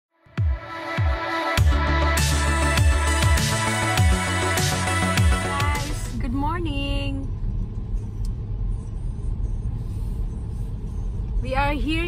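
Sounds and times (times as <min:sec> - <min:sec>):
car engine and road noise: 0:00.3 - 0:12.0.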